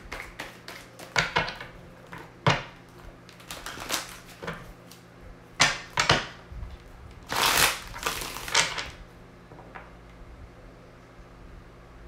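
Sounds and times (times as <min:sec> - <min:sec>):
cards shuffling: 0:00.0 - 0:01.7, 0:02.9 - 0:05.1, 0:07.3 - 0:08.9.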